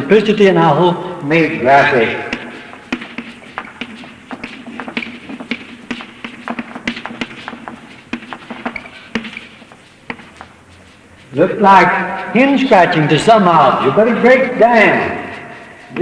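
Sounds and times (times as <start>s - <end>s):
chalk tapping on a chalkboard: 2.3s - 11.0s.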